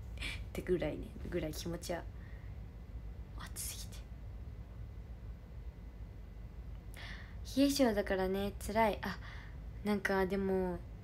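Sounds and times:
low steady hum: 0:00.0 - 0:11.0
woman breathing in: 0:06.9 - 0:07.4.

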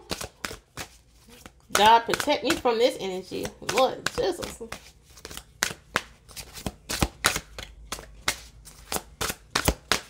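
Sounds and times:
deck of cards being shuffled: 0:03.3 - 0:10.0.

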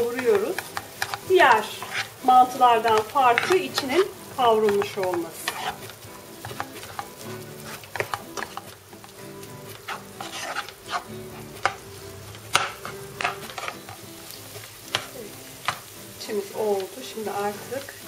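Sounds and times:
faint sizzle of frying: 0:00.0 - 0:18.0
wooden spoon scraping frying pan: 0:00.0 - 0:18.0.

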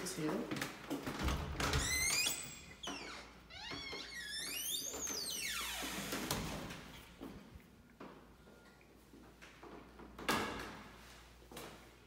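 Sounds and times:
door hinge squeaking: 0:01.6 - 0:06.4.

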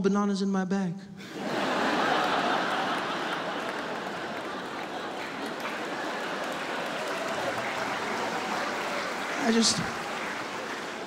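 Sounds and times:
audience laughing: 0:01.2 - 0:11.0
audience applauding: 0:01.3 - 0:11.0.

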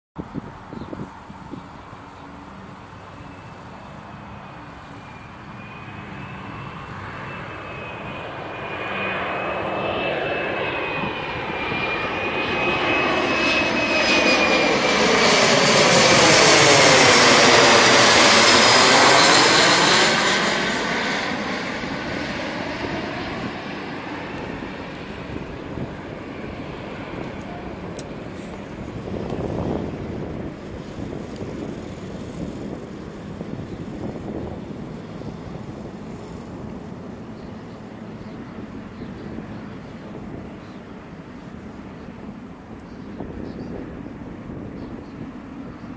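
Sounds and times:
high fan whine: 0:00.2 - 0:45.9
jet passing low overhead: 0:00.2 - 0:45.9.

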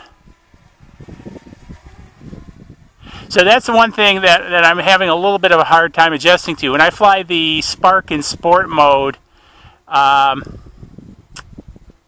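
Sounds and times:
breeze buffeting microphone: 0:00.0 - 0:12.0.

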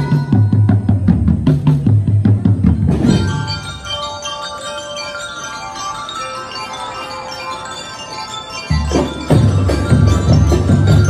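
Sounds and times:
bell lyres playing melody: 0:00.0 - 0:01.9, 0:02.5 - 0:11.0
heavy drum beats: 0:00.0 - 0:03.7, 0:08.7 - 0:11.0.

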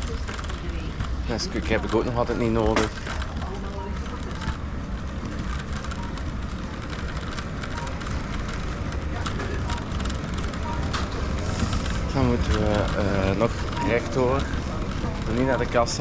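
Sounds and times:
shopping trolley rolling: 0:00.0 - 0:16.0.

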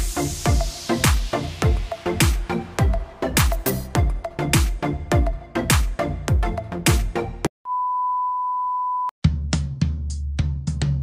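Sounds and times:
electronic dance music: 0:00.0 - 0:07.5
steady test-tone beep: 0:07.7 - 0:09.1.

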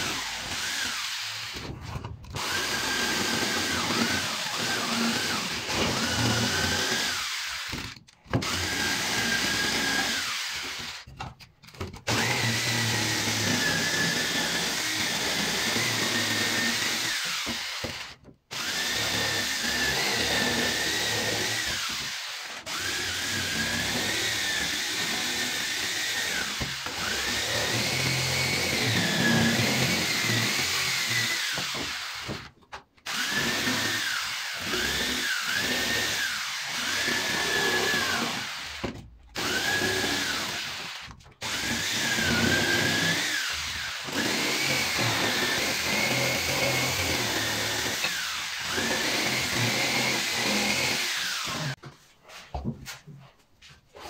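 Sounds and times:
jigsaw cutting wood: 0:00.0 - 0:51.8.

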